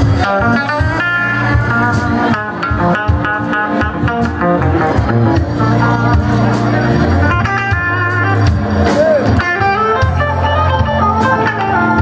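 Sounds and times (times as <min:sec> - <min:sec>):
bass guitar: 0:00.0 - 0:12.0
drums: 0:00.0 - 0:12.0
electric guitar: 0:00.0 - 0:12.0.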